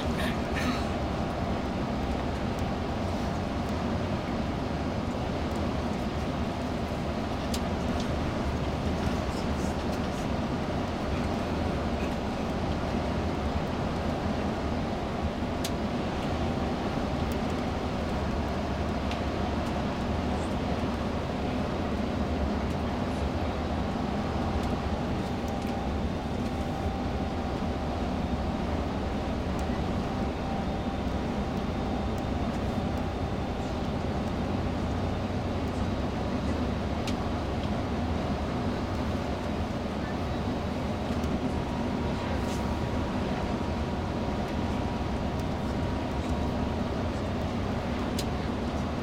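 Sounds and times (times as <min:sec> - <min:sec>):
coach engine and road noise: 0:00.0 - 0:49.0.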